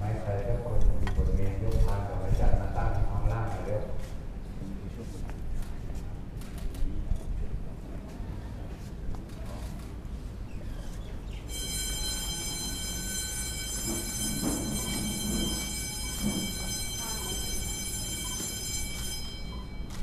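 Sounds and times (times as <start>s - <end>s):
faint low voices: 0.0s - 11.3s.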